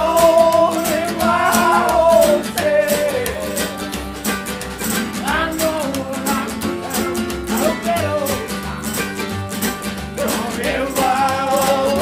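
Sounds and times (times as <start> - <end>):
double bass: 0.0 - 12.0
strummed acoustic guitar: 0.0 - 12.0.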